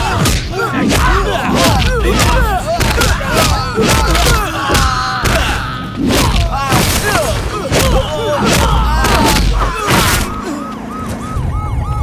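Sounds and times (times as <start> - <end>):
police siren yelping wail: 0.0 - 12.0.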